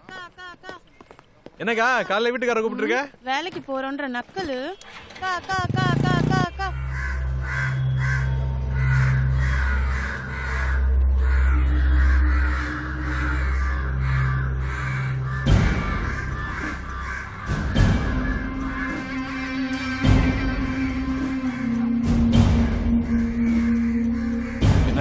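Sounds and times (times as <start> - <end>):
crows cawing: 6.2 - 25.0
low film score drone: 6.7 - 25.0.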